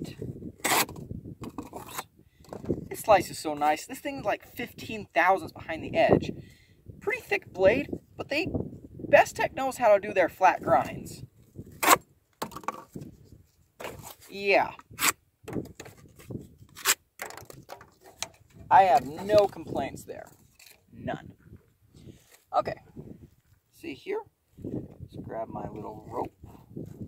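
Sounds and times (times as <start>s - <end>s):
knife cutting cardboard: 0.6s - 2.1s, 11.8s - 12.0s
knife scraping through cardboard: 0.6s - 2.1s, 11.7s - 12.0s, 13.8s - 14.3s, 14.9s - 15.2s, 15.8s - 17.0s
cardboard rustling: 13.8s - 14.4s.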